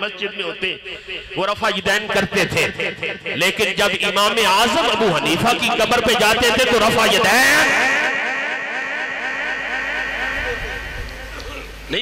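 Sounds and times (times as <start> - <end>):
loudspeaker echo of speech: 0.0 - 12.0.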